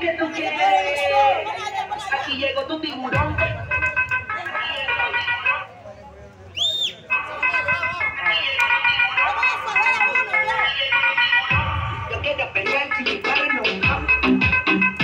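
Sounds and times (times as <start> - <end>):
high whistle-like tone: 6.5 - 7.4
dance music with vocals: 7.1 - 15.0.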